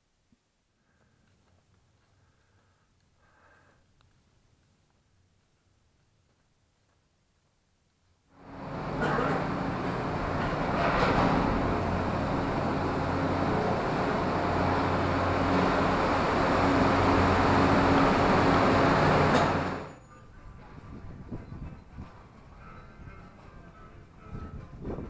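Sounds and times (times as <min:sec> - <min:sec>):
machinery rumbling with low hum: 0:08.4 - 0:23.7.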